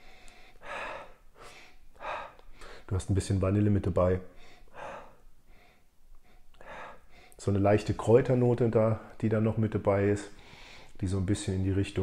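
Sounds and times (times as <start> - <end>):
man breathing in through nose: 0.0 - 2.9, 4.4 - 7.4, 10.4 - 11.0.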